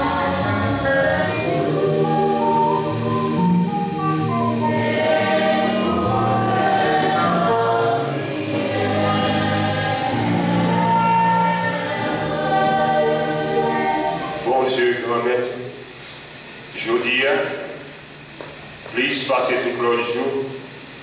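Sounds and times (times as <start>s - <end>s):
choir singing a slow hymn: 0.0s - 15.4s.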